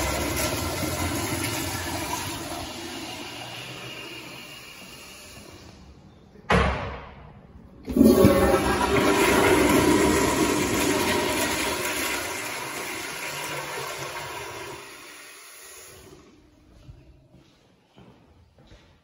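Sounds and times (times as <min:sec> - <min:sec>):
toilet water rushing: 0:00.0 - 0:05.7, 0:07.9 - 0:16.3.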